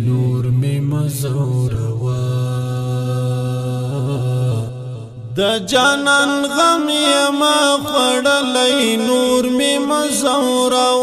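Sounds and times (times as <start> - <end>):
person singing unaccompanied chant: 0.0 - 11.0.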